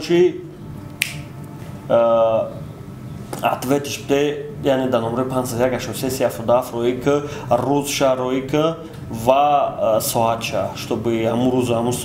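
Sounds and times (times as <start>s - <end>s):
finger snap: 0.9s - 1.6s.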